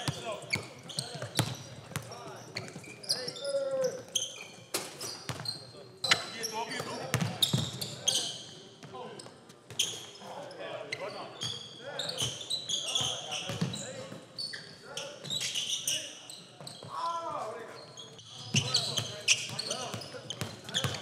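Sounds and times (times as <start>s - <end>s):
sneakers squeaking: 0.0s - 21.0s.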